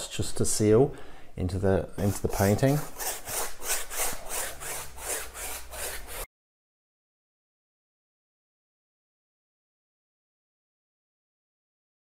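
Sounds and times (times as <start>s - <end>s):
paintbrush scrubbing canvas: 2.0s - 6.3s.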